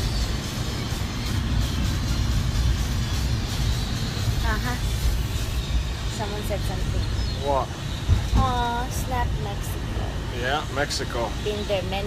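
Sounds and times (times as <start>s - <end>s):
background music: 0.0s - 12.0s
road and engine rumble: 0.0s - 12.0s.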